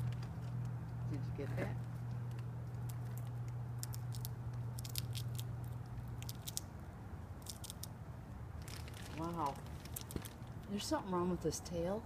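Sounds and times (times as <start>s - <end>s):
squirrel crunching food: 0.0s - 10.8s
steady low hum: 0.0s - 12.0s.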